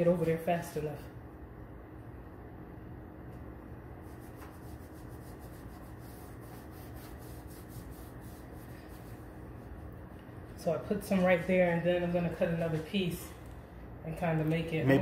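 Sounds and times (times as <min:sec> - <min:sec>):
tape rubbing and clicking: 0:04.1 - 0:09.2.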